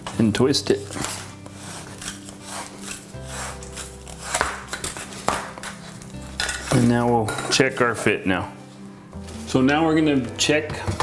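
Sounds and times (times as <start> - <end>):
background music: 0.0 - 11.0
pipe cutter rasping through pipe: 0.9 - 5.1.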